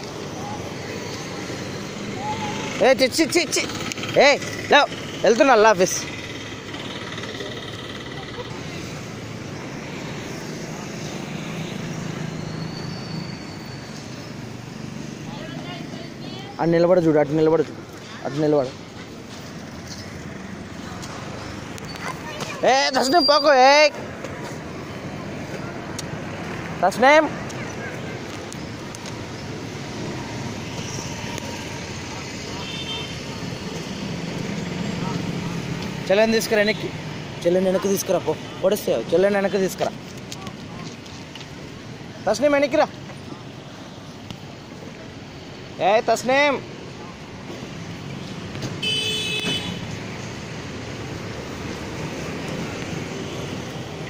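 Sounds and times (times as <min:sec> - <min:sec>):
street traffic hum: 0:00.0 - 0:54.0.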